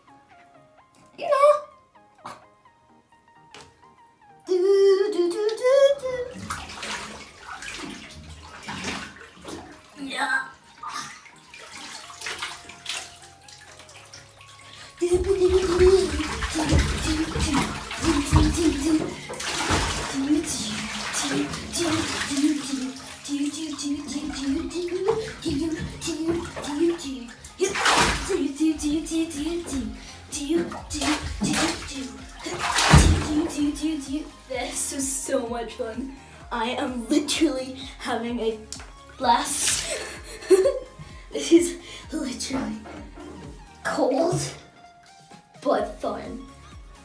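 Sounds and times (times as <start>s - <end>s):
background music: 0.0s - 47.0s
water splashing in bathtub: 5.3s - 47.0s.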